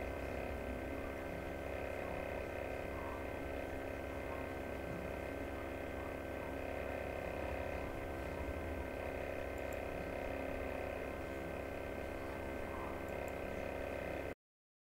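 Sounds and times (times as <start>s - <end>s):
steady electrical hum: 0.0s - 14.4s.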